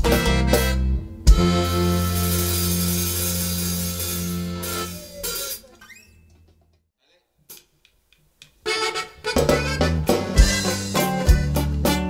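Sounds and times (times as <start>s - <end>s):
accordion: 0.0s - 5.1s, 8.6s - 12.0s
band playing: 0.0s - 5.7s, 8.6s - 12.0s
drums: 0.0s - 5.7s, 8.4s - 12.0s.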